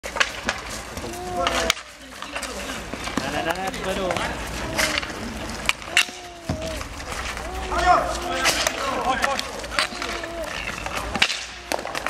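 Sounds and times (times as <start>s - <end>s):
hockey sticks striking plastic ball: 0.0s - 12.0s
player shouting: 5.9s - 11.9s.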